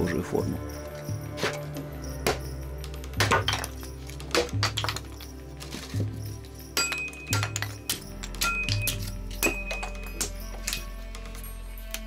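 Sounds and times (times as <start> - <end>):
background music with slow beat: 0.0 - 12.0
hatchet chopping wood: 1.4 - 6.0.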